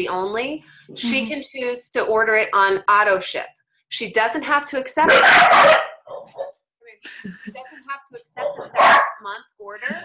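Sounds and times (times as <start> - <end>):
dog barking: 5.1 - 6.6, 8.4 - 9.2.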